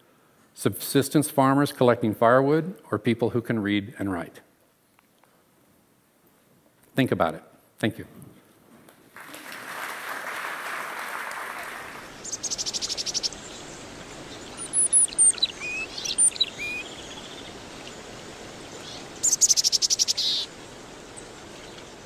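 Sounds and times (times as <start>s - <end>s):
faint steady hiss: 0.0s - 22.0s
applause: 9.1s - 12.2s
bird trilling and chirping: 12.1s - 18.0s, 18.8s - 20.5s.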